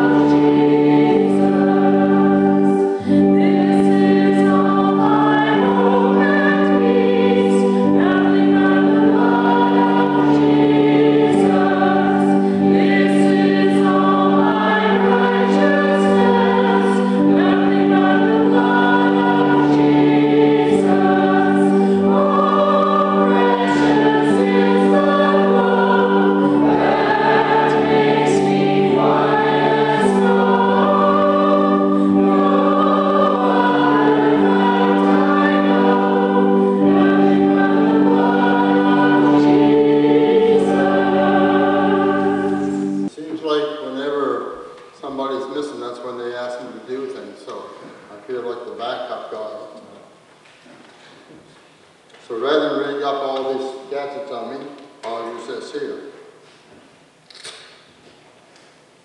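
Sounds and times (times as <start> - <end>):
held chords: 0.0 - 43.1
congregation singing a hymn: 0.0 - 43.3.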